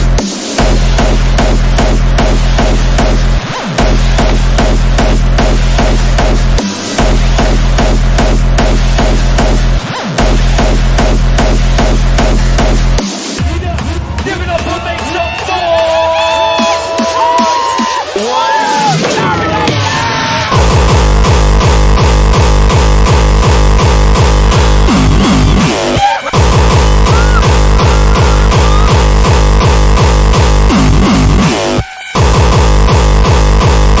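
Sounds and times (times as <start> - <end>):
heavy bass beat: 0.0 - 34.0.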